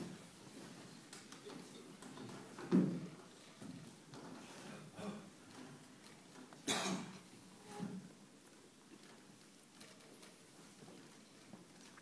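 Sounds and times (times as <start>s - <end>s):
faint clicks and rustles: 0.0s - 12.0s.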